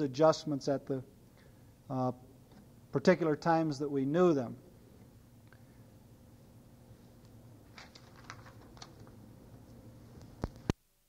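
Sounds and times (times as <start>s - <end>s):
cassette hum and hiss: 0.0s - 11.0s.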